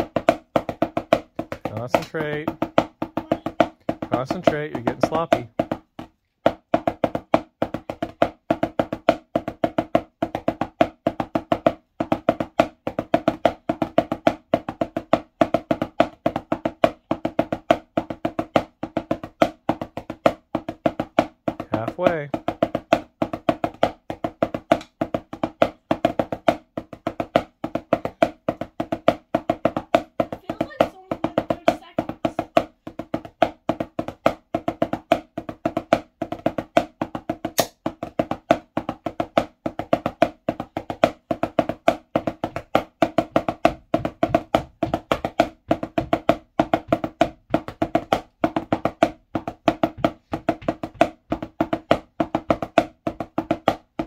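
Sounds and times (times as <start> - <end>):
drumsticks on practice pad: 37.5 - 37.8.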